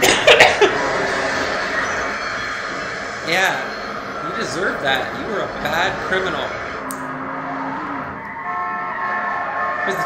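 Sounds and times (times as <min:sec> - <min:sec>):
steady high tones: 0:00.0 - 0:10.0
vehicle noise: 0:00.0 - 0:10.0.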